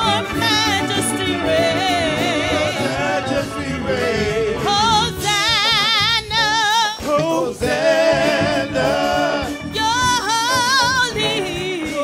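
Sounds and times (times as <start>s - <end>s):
woman and man singing gospel: 0.0s - 12.0s.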